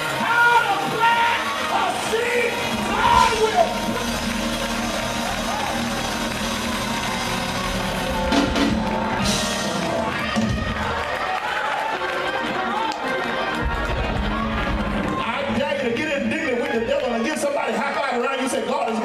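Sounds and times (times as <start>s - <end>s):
congregation shouting: 0.0s - 15.4s
church band playing: 0.0s - 17.6s
drum kit: 2.0s - 11.2s.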